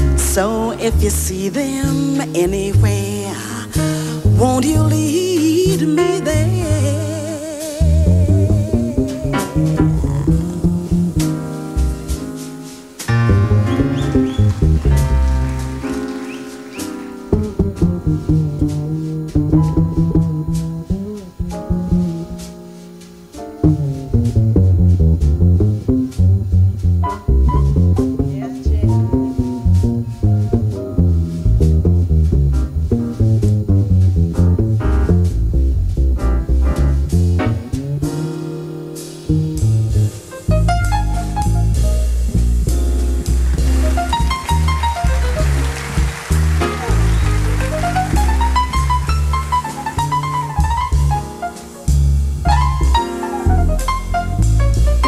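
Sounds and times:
plucked upright bass: 0.0s - 12.4s, 13.1s - 16.3s, 17.2s - 55.0s
jazz trio playing: 0.0s - 55.0s.

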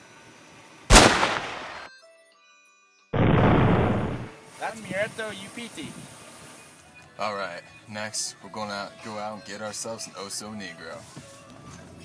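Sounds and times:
gunshot from a long gun: 0.9s - 1.9s, 3.2s - 4.3s.

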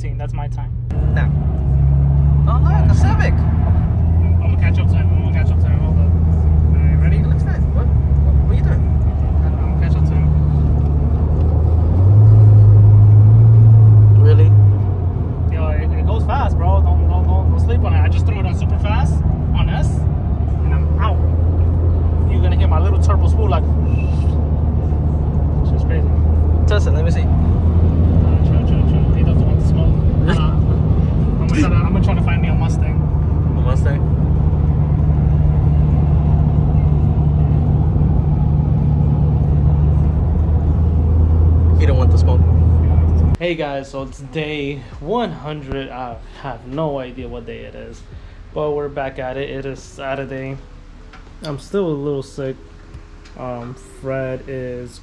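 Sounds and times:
car cabin road and engine drone: 0.0s - 55.0s.

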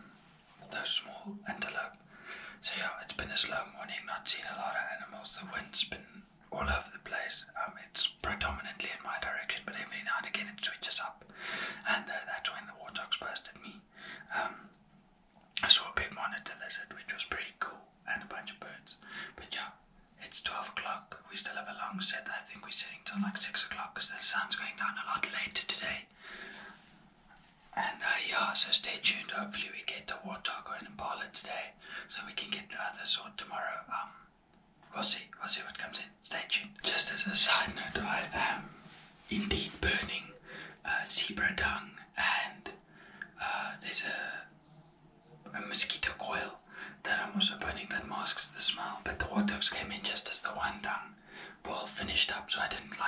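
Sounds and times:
man whispering: 0.0s - 14.8s, 15.5s - 26.9s, 27.7s - 34.3s, 34.9s - 53.0s.

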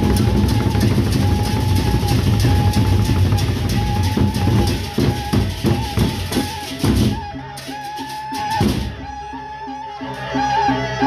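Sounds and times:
barrel drums beaten with sticks: 0.0s - 7.4s.

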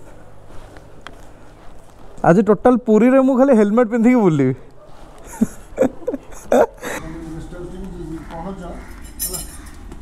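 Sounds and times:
low voices: 6.3s - 9.6s
metallic clink: 9.0s - 9.8s.

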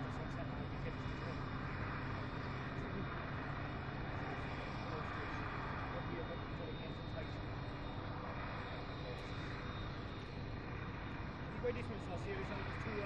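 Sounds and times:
forage harvester engine drone: 0.0s - 13.0s.

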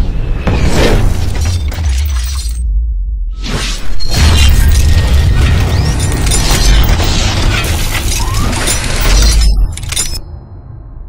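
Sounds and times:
heavy bass rumble: 0.9s - 3.4s
crackling shattering effects: 3.6s - 10.2s.

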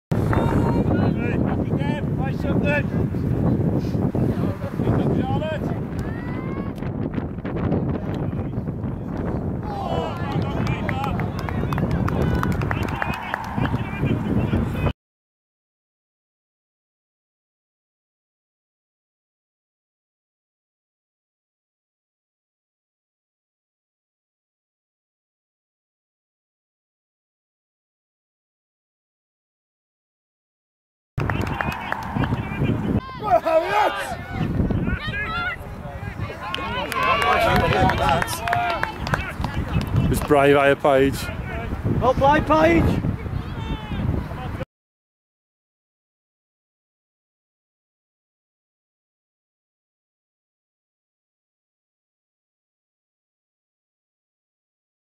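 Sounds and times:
wind rumble on microphone: 0.1s - 14.9s, 31.2s - 44.6s
distant shouts and calls: 9.6s - 14.6s, 31.2s - 39.9s, 43.2s - 44.2s.

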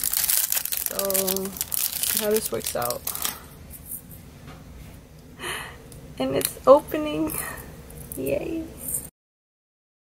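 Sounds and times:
plastic wrapping crinkling: 0.0s - 4.0s.

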